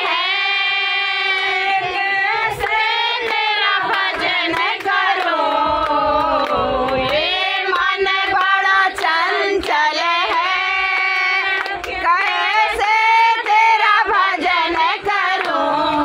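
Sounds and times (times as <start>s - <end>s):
women singing devotional song: 0.0s - 16.0s
hand claps: 0.5s - 16.0s.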